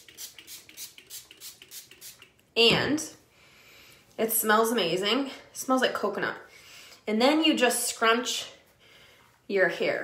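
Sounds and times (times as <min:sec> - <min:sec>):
pump spray bottle hissing: 0:00.0 - 0:02.3.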